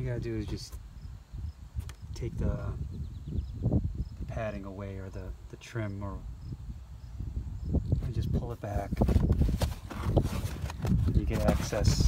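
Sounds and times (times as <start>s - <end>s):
trim scuffs and knocks: 9.0s - 12.0s.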